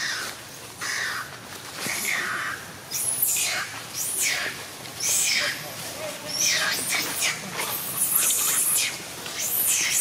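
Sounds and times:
harsh animal calls: 0:00.0 - 0:05.7, 0:06.3 - 0:10.0.

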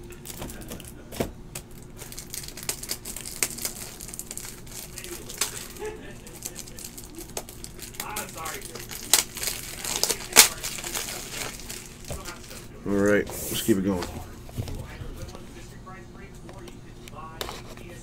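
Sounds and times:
packaging crinkling: 0:00.2 - 0:14.9.

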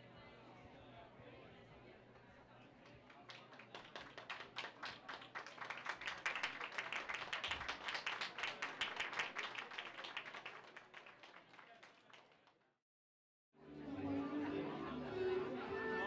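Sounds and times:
audience applauding: 0:03.0 - 0:12.6.

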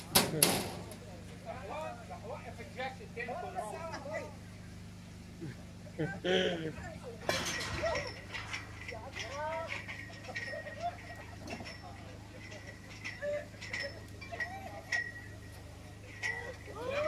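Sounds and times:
low hum: 0:00.0 - 0:17.0
people calling out: 0:12.5 - 0:17.0.

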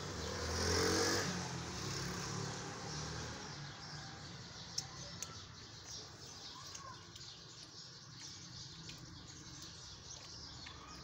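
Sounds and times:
vehicle engine passing by: 0:00.0 - 0:04.4.

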